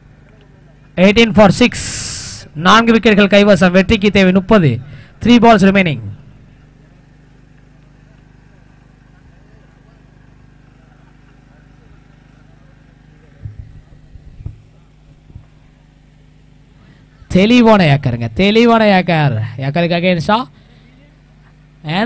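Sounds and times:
distant voices: 0.0 - 17.8.

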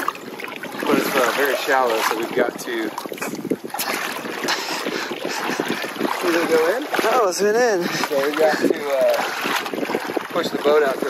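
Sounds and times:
water sloshing around boat hull: 0.0 - 11.0.

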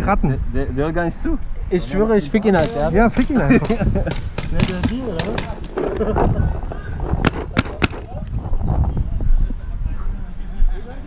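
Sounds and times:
paintball markers firing: 4.0 - 6.1.

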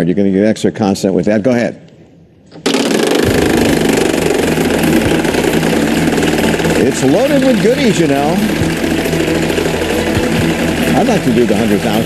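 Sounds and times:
electrical hum-buzz: 2.5 - 12.0.

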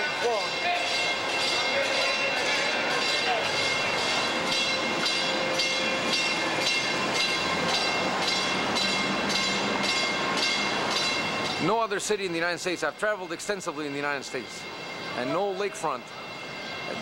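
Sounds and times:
tyres rolling on steel bridge: 0.0 - 17.0.

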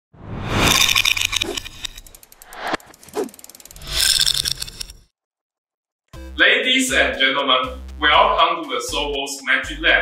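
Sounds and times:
whooshing sweeps: 0.2 - 3.9
rapid mechanical clicking: 1.2 - 4.9.

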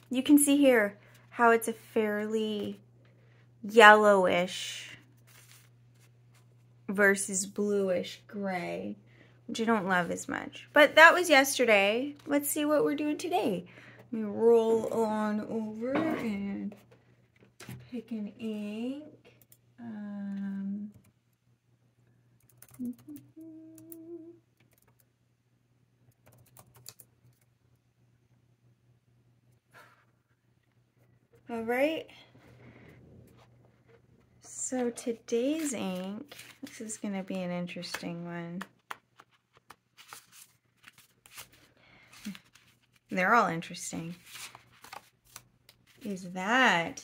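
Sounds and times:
paper cards rustling: 5.1 - 6.5, 34.8 - 46.3
woman humming: 19.8 - 21.0, 22.7 - 24.5.

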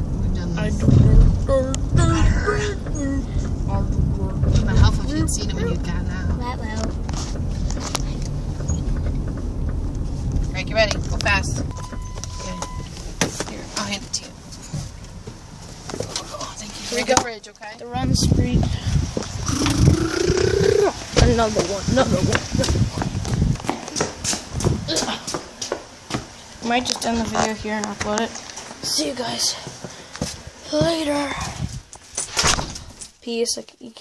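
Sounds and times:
car road noise rumble: 0.0 - 33.4
boy's drawn-out vocal cry: 19.5 - 21.0.

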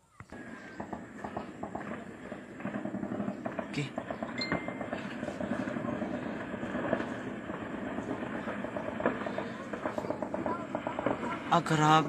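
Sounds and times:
distant gunfire: 0.4 - 12.0
people talking: 3.7 - 4.0, 5.2 - 6.5, 8.9 - 12.0.

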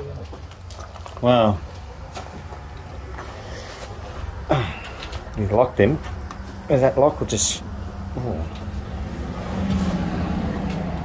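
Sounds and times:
steady low hum: 1.6 - 11.0.

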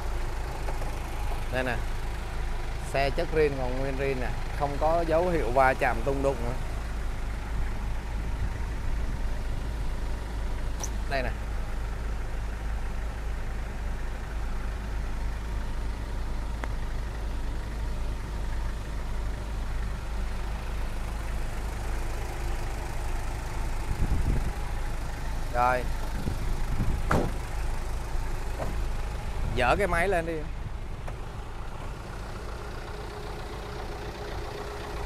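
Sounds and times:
truck engine idling: 0.0 - 35.0.

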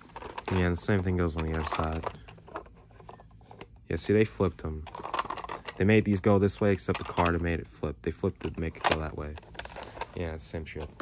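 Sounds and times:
toy truck clicks and scraping: 0.1 - 3.2.

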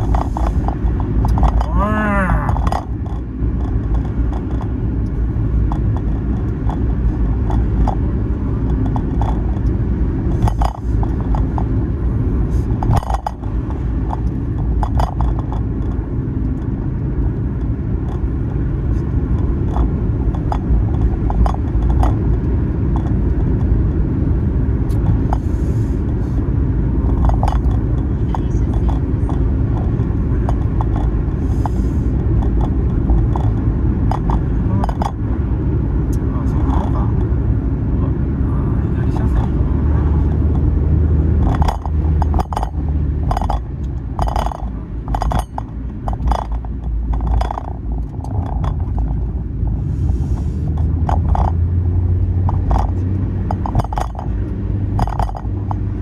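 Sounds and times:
car road and engine rumble: 0.0 - 56.0.

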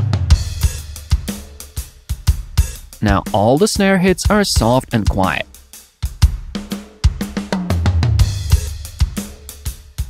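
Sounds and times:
rock drum kit groove: 0.0 - 10.0.

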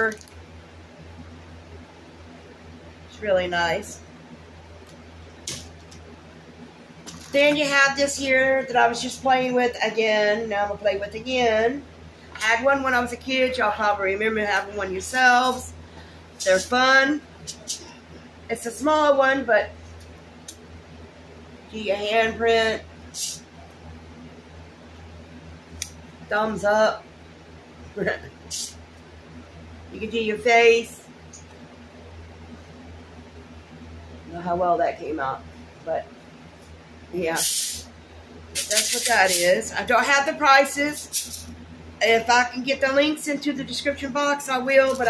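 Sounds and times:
steady low hum: 0.0 - 45.0
short soft hiss: 37.4 - 37.9.

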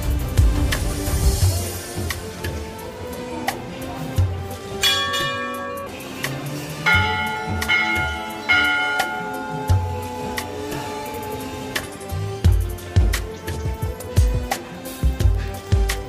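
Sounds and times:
devotional music with low drumbeat: 0.0 - 16.0
metal bells ringing: 4.7 - 12.4.

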